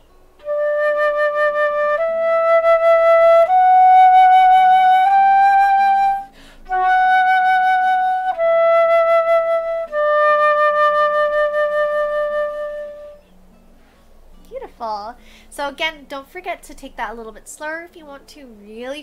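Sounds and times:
flute playing held notes: 0.4 - 13.3
quick breath: 6.3 - 6.7, 15.2 - 15.5.

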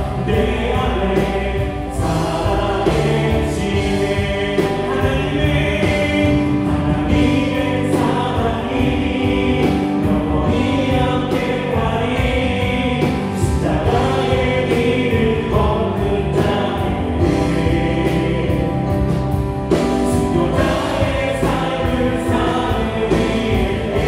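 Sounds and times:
bass guitar: 0.0 - 24.0
drum kit beat: 0.0 - 24.0
electric guitar: 0.0 - 24.0
keyboards: 0.0 - 24.0.

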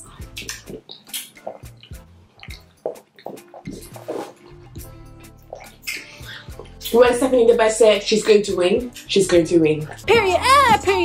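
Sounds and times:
quiet background music: 0.0 - 11.0
wet squelching and chewing: 0.2 - 7.0.

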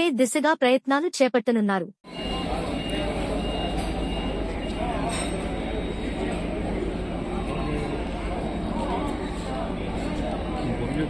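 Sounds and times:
standing train low rumble: 2.1 - 11.0.

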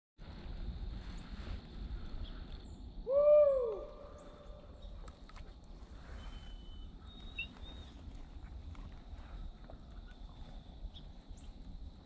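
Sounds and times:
low rumble of wind: 0.2 - 12.0.

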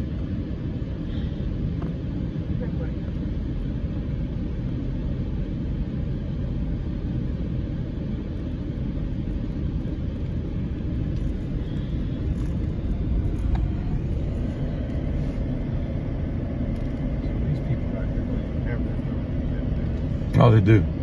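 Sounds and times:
vehicle engine and tyre rumble: 0.0 - 21.0.

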